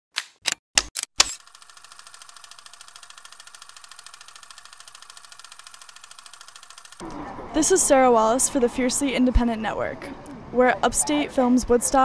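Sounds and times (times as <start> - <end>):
sharp clicks: 0.2 - 7.0
fast ticking: 1.5 - 7.0.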